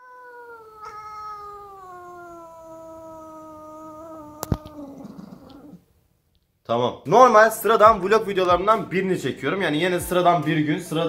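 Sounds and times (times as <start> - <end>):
cat meowing long: 0.0 - 5.8.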